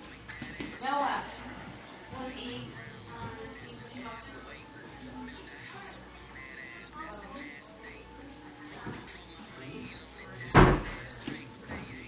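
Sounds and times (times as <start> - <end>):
quiet background music: 0.0 - 12.0
loud thud: 10.6 - 11.0.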